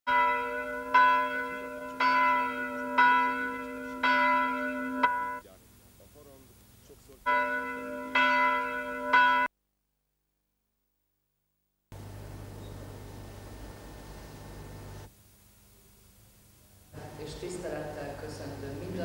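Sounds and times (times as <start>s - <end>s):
church bell tolling: 0.1s - 5.5s, 7.3s - 9.5s.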